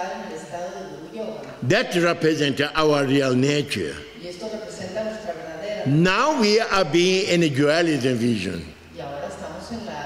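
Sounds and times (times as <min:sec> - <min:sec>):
person speaking: 0:05.8 - 0:08.7.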